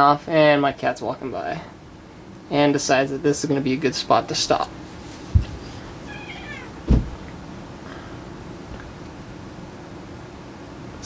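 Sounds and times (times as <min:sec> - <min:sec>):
dull thumps: 0:05.2 - 0:05.8, 0:06.6 - 0:07.3
cat meowing: 0:06.0 - 0:06.8.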